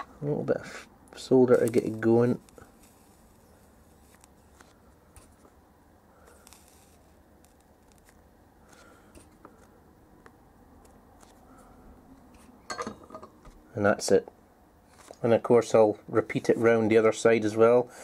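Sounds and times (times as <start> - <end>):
soldering iron tip clicks and scrapes: 6.4 - 8.1.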